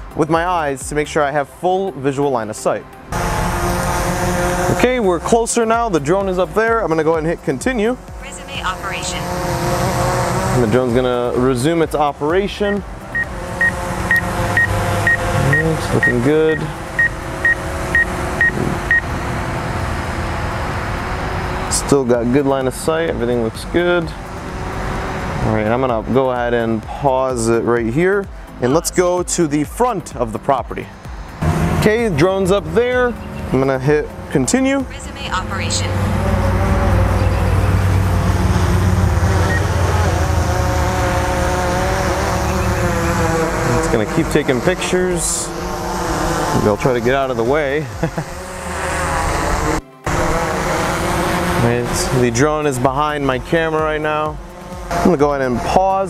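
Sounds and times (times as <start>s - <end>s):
drone propellers humming: 2.9s - 56.0s
short high beeps: 13.1s - 19.0s.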